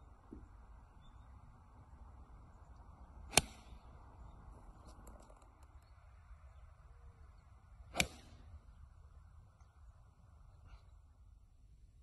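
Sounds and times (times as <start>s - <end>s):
golf club striking ball: 3.3s - 3.8s, 7.9s - 8.4s.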